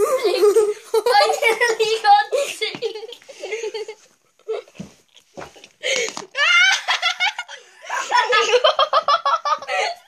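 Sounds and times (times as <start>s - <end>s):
children laughing: 0.0s - 4.8s, 5.6s - 10.0s.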